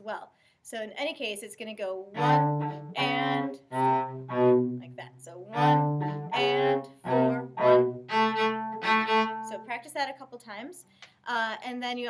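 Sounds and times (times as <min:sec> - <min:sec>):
bowed cello notes: 0:02.1 - 0:09.8.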